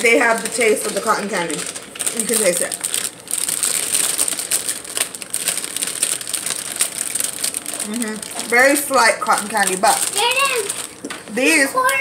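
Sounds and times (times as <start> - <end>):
person chewing candy: 1.7 - 8.5.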